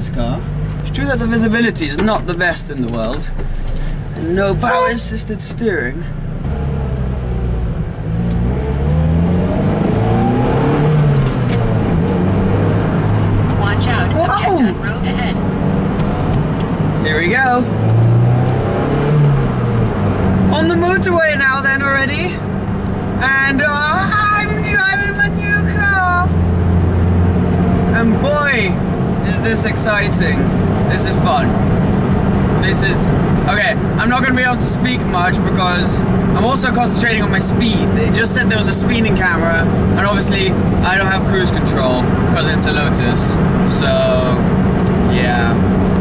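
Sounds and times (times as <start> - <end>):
car engine revving while driving: 0.0 - 46.0.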